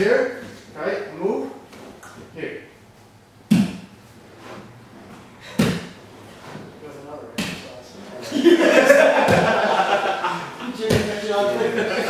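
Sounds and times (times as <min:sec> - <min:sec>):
body thumping on a mat: 0:05.5 - 0:06.7, 0:09.2 - 0:09.6.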